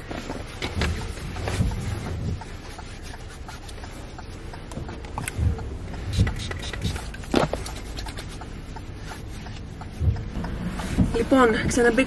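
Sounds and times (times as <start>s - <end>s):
clothing rustling against microphone: 0.0s - 12.0s
low cabin rumble: 4.4s - 12.0s
dull handling thumps: 9.8s - 11.8s.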